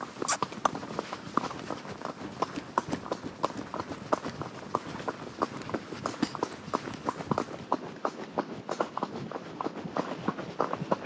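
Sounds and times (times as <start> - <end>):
horse hooves on gravel: 0.0 - 11.0.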